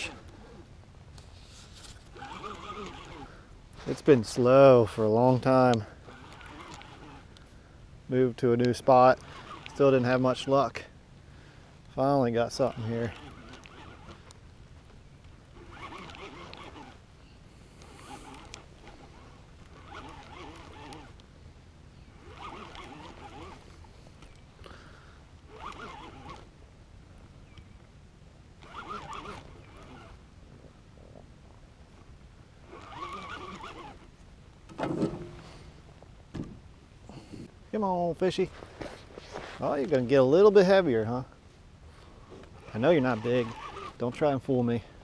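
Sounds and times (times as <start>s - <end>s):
fishing reel cranking: 0.0s - 0.7s, 1.7s - 7.5s, 8.6s - 10.9s, 11.9s - 17.1s, 17.8s - 21.3s, 22.1s - 24.8s, 25.4s - 26.5s, 28.6s - 30.2s, 32.6s - 34.1s, 42.3s - 44.5s.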